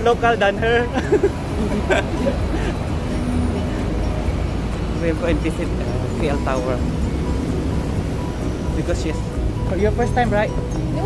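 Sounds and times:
low rumble of street traffic: 0:00.0 - 0:11.0
vehicle engine: 0:00.0 - 0:11.0.

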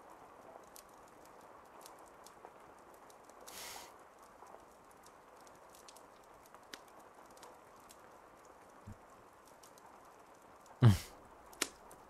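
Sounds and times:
faint clicks: 0:04.2 - 0:10.8.

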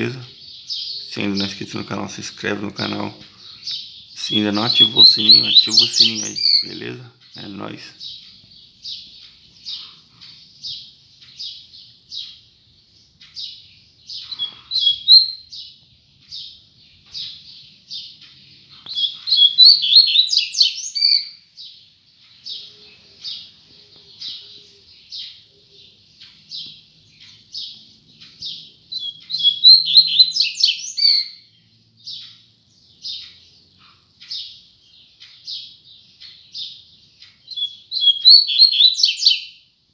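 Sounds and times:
bird rapid song bursts: 0:00.0 - 0:39.7
bird short high chirps: 0:02.8 - 0:08.2, 0:14.1 - 0:15.7, 0:18.7 - 0:21.4, 0:26.2 - 0:31.5, 0:37.4 - 0:39.6.

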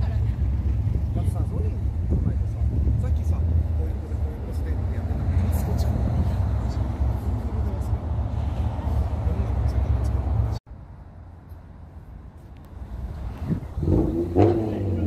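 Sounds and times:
car engines idling: 0:00.0 - 0:15.0
people talking: 0:01.0 - 0:08.1, 0:09.2 - 0:10.5.

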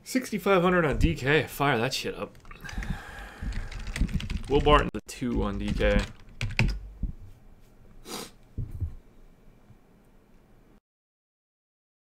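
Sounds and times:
keyboard keystrokes: 0:03.5 - 0:06.8.

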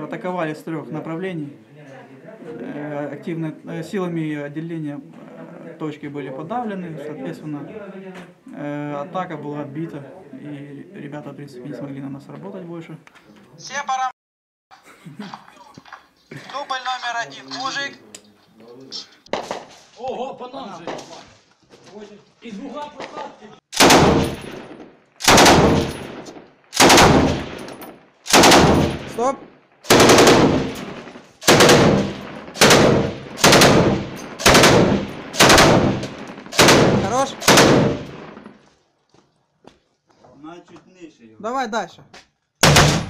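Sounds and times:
machine gun bursts echoing: 0:23.8 - 0:27.6, 0:28.3 - 0:29.2, 0:29.9 - 0:38.4.

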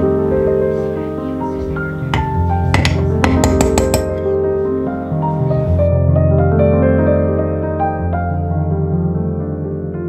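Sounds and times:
soft instrumental music: 0:00.0 - 0:10.0
metal spoon clinking glass jar: 0:02.2 - 0:04.2.

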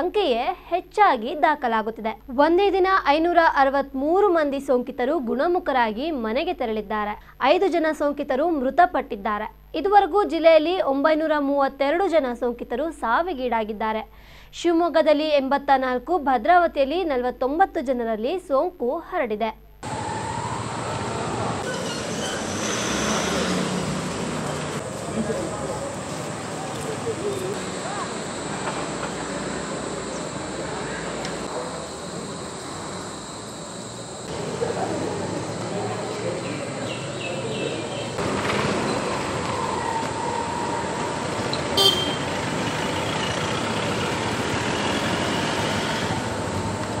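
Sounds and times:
outdoor rumble and hiss: 0:00.0 - 0:47.0
road traffic noise: 0:19.8 - 0:47.0
car horn toot: 0:41.5 - 0:42.4.

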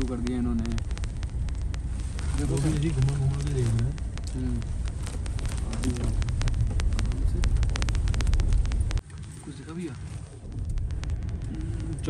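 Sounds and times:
stones clicking and knocking: 0:00.0 - 0:09.0
car engine and tyre rumble: 0:00.0 - 0:12.0.

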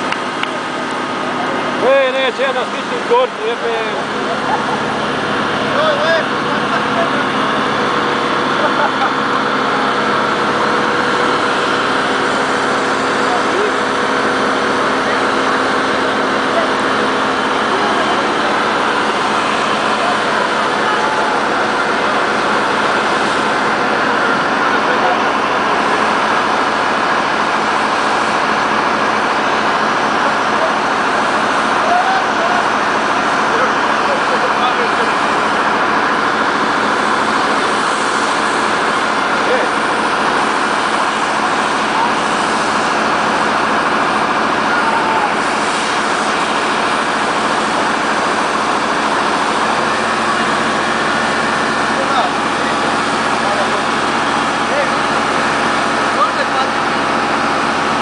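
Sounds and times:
pump engine running: 0:00.0 - 0:58.0
foam spraying from hose: 0:00.1 - 0:58.0.

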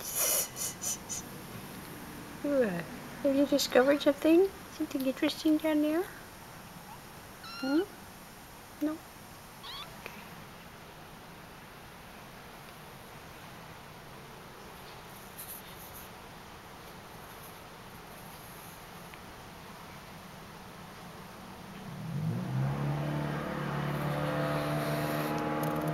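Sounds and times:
kitten mewing: 0:06.8 - 0:08.0, 0:09.6 - 0:10.0
motor starting and humming: 0:22.2 - 0:25.9.

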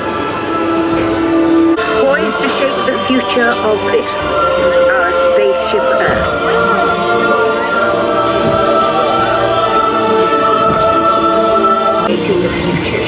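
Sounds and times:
choir holding sustained chord: 0:00.0 - 0:13.0.

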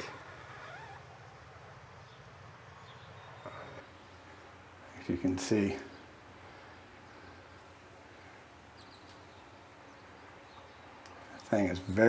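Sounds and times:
faint bird chirps: 0:00.0 - 0:04.6
steady low hum: 0:00.0 - 0:12.0.

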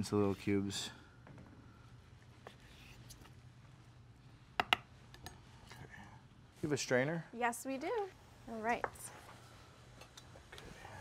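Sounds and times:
knife tapping on wooden board: 0:04.6 - 0:04.8.

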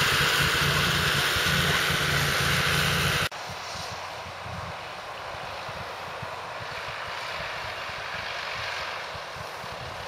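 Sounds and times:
tractor diesel engine drone: 0:00.0 - 0:10.0.

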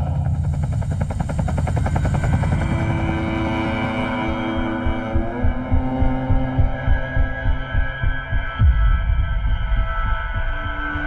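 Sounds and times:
helicopter rotor chopping: 0:00.0 - 0:07.6
steady low drone: 0:00.0 - 0:11.0.

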